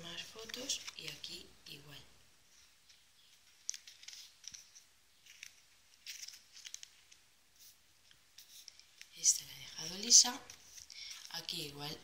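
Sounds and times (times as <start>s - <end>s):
stiff paper pages rustling: 0.2s - 1.3s, 2.5s - 12.0s.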